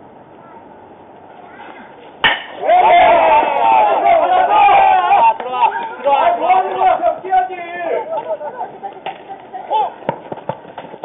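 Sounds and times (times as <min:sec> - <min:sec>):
bat cracking a baseball: 0:02.2 - 0:02.7
voices shouting: 0:02.2 - 0:10.0.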